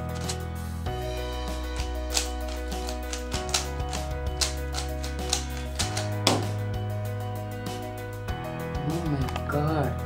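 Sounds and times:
background music with chords: 0:00.0 - 0:10.0.

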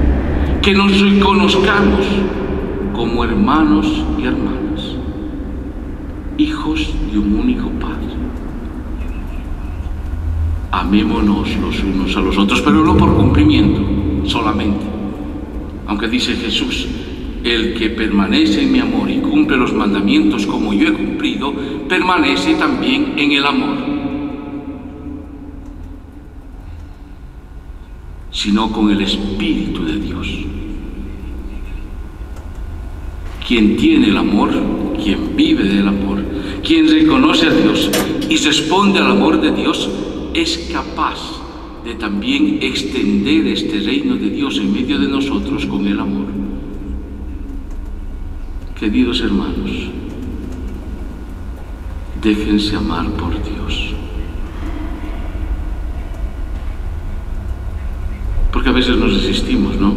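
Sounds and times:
amplified man's voice echoing: 0:00.0 - 0:05.6, 0:06.2 - 0:08.6, 0:10.8 - 0:25.7, 0:28.4 - 0:31.4, 0:33.4 - 0:47.2, 0:48.7 - 0:50.4, 0:52.1 - 0:54.2, 0:58.4 - 0:59.9
steady low hum: 0:00.0 - 0:59.9
steady low rumble: 0:00.0 - 0:59.9.

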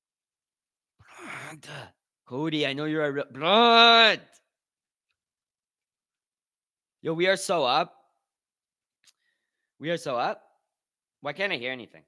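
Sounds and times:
man's breathy sigh: 0:01.0 - 0:01.9.

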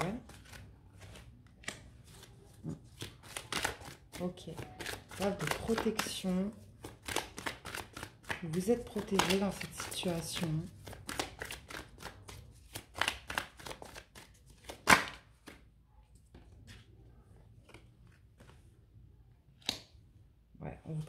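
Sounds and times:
cards being shuffled: 0:00.0 - 0:15.6, 0:17.6 - 0:18.7.

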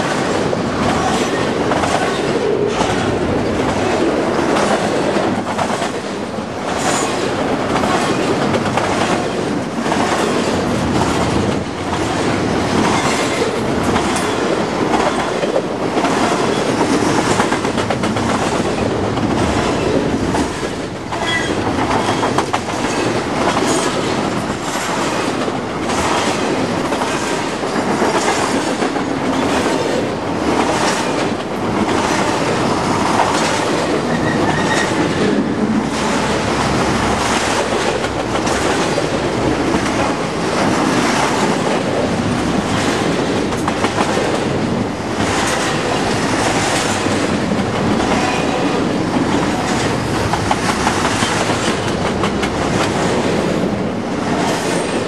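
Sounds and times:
freight train wheels rumbling: 0:00.0 - 0:55.0
wheels clickety-clack over track: 0:00.0 - 0:55.0.

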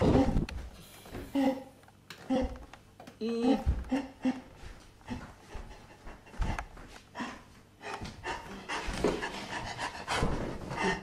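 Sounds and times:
person panting heavily: 0:03.9 - 0:11.0.

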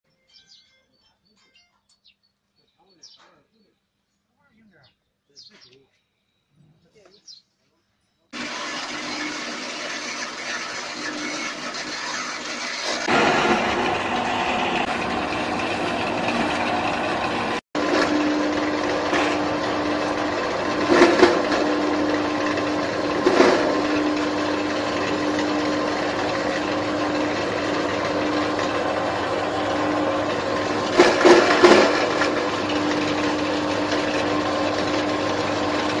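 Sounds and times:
chaff cutter humming: 0:08.4 - 0:36.0.

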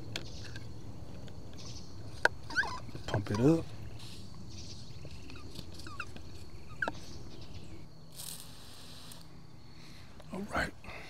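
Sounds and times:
sprayer hiss: 0:08.1 - 0:09.3.

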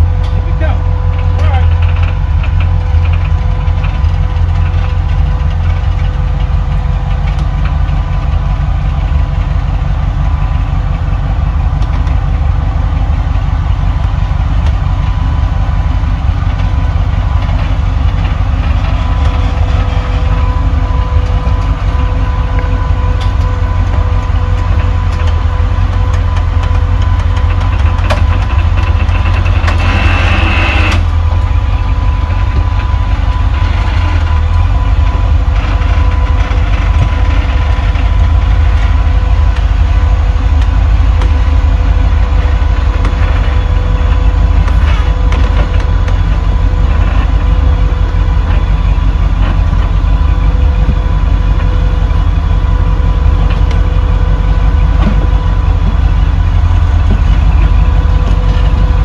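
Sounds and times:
engine deep rumble: 0:00.0 - 0:59.0.

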